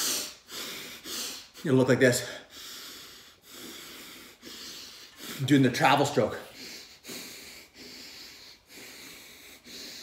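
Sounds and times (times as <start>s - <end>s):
man breathing deeply: 0.0s - 1.6s, 2.2s - 10.0s.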